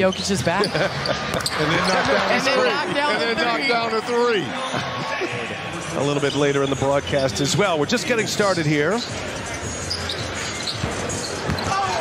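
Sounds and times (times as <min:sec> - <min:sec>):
arena crowd noise: 0:00.0 - 0:12.0
basketball bouncing on court: 0:10.8 - 0:12.0.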